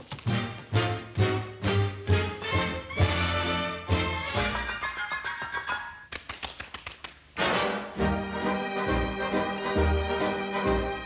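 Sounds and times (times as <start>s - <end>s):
soft orchestral music: 0.2s - 5.6s, 7.4s - 11.0s.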